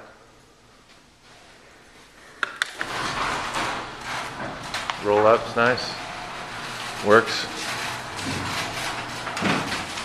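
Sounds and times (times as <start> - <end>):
roll-up garage door opening: 2.7 - 10.0.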